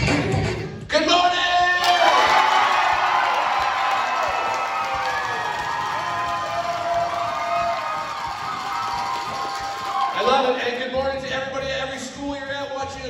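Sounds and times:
students cheering and shouting: 0:01.8 - 0:10.6.

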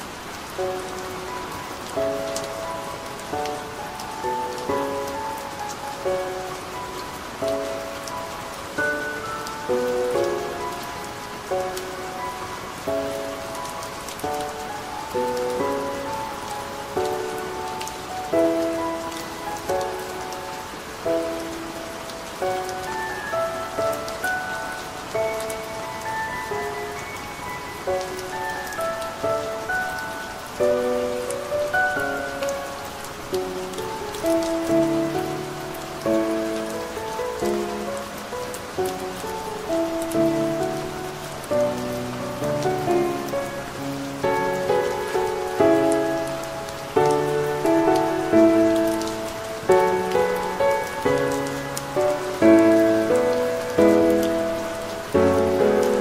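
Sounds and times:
calm solo piano: 0:00.0 - 0:56.0
soft rain: 0:00.0 - 0:56.0.

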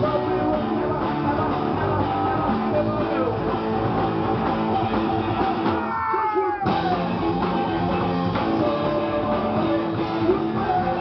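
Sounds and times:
punk rock band playing live: 0:00.0 - 0:11.0.

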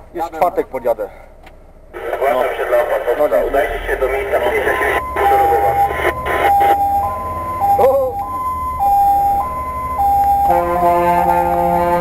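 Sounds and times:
engine drone: 0:02.0 - 0:12.0
chord of steady tones: 0:02.7 - 0:12.0
two-tone siren: 0:04.4 - 0:12.0.

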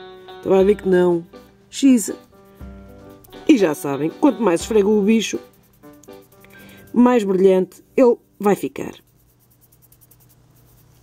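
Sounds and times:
low steady hum: 0:00.1 - 0:11.0
fingertip rubbing on nail: 0:02.2 - 0:07.6, 0:08.3 - 0:11.0.

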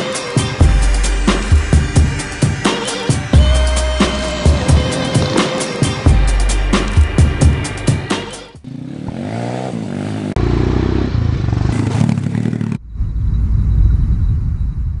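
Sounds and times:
music with a beat: 0:00.0 - 0:08.6
motorbike engine revving: 0:03.4 - 0:06.1, 0:08.2 - 0:12.8.

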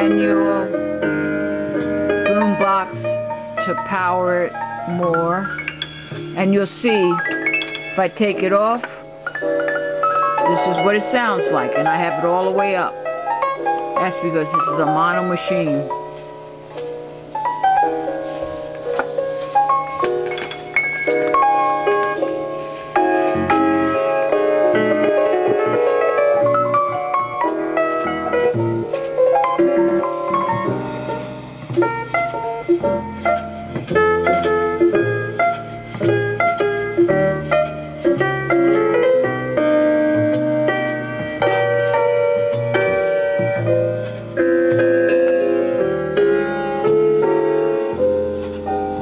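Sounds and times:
keyboard music from cassette: 0:00.0 - 0:49.0.

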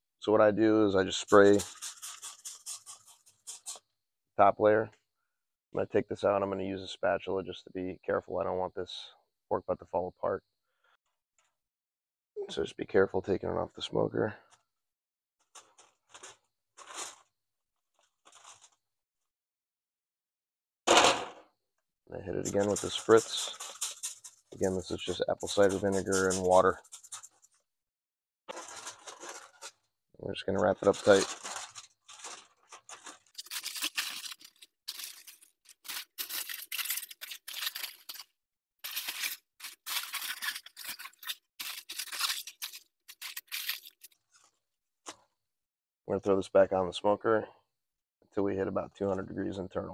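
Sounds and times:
aluminum foil crinkling: 0:01.0 - 0:03.8, 0:15.4 - 0:18.9, 0:22.3 - 0:27.7, 0:28.5 - 0:45.2.

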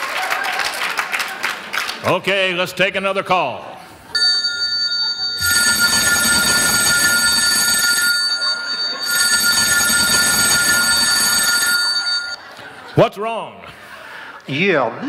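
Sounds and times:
telephone ringing: 0:04.2 - 0:12.5.

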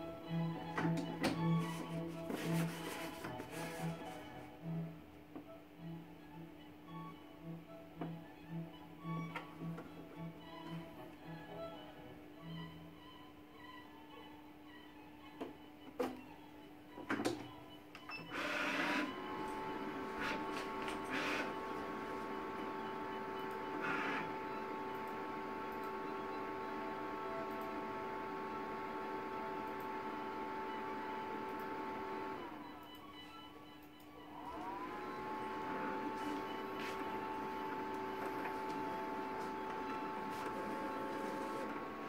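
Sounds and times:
plotter motors whirring: 0:18.3 - 0:32.8, 0:34.3 - 0:42.0.

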